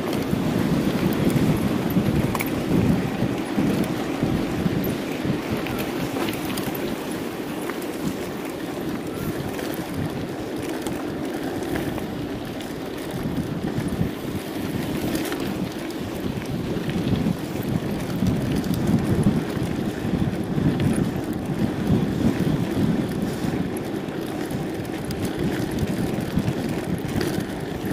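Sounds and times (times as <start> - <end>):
bike rattles and ticks: 0.0 - 27.9
bike tyres rolling on dirt: 0.0 - 27.9
wind on microphone: 0.0 - 27.9.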